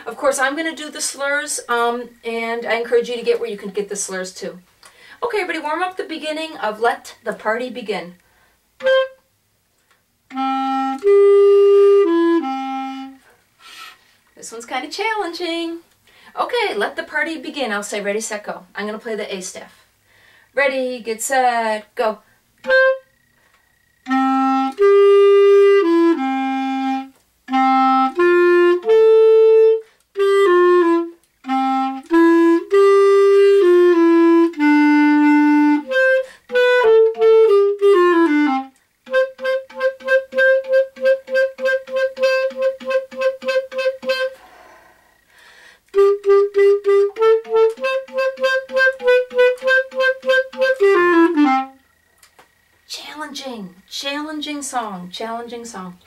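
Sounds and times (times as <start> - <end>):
solo clarinet melody: 8.8 - 9.3, 10.2 - 13.4, 22.6 - 52.1.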